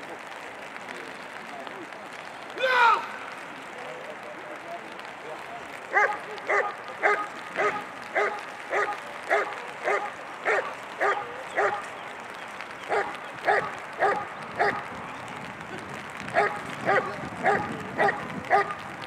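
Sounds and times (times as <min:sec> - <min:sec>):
dog barking: 0:05.9 - 0:11.9, 0:12.9 - 0:14.9, 0:16.4 - 0:18.8.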